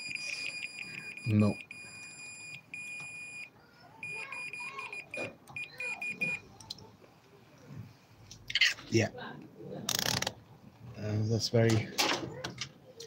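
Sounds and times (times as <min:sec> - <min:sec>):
multimeter continuity beeping: 0:00.0 - 0:06.5.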